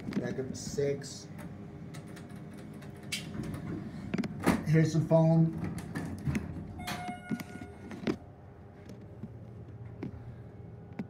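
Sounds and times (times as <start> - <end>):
elevator drive humming: 0.0 - 11.0
brief ringing tone: 6.8 - 7.9.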